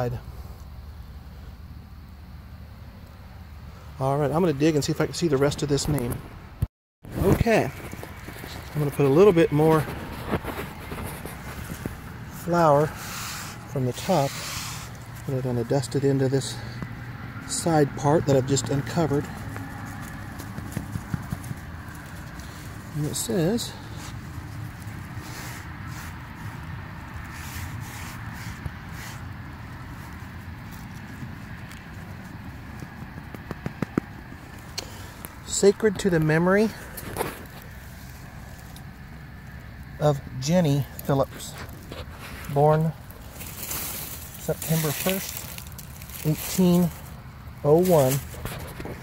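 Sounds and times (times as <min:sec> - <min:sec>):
handling clicks and rustles: 0:04.3 - 0:06.4, 0:07.1 - 0:49.0
wind rumble on microphone: 0:05.4 - 0:13.0.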